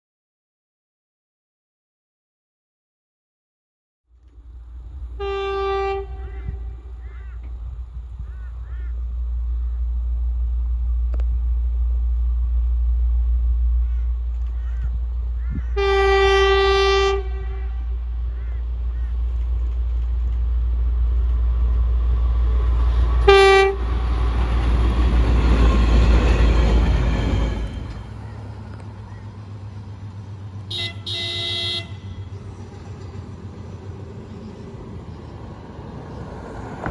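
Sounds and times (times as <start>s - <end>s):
train rumbling: 4.1s - 36.9s
locomotive horn blast: 5.1s - 7.5s, 13.6s - 19.2s, 23.1s - 24.2s, 30.6s - 32.4s.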